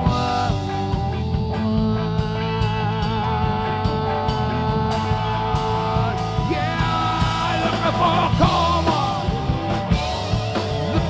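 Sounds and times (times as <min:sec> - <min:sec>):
drum kit: 0:00.0 - 0:11.0
electric bass: 0:00.0 - 0:11.0
lead electric guitar bending notes: 0:00.0 - 0:11.0.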